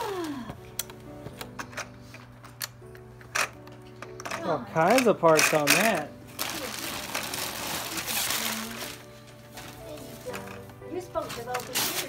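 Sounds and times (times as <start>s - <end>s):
soft music of long held notes: 0.0s - 12.0s.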